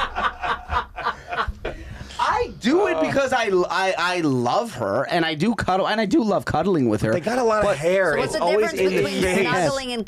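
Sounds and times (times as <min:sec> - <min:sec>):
group of people laughing: 0:00.0 - 0:02.0.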